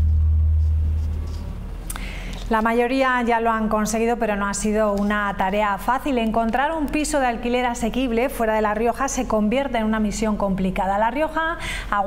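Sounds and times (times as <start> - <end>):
deep held bass hum: 0.0 - 2.6.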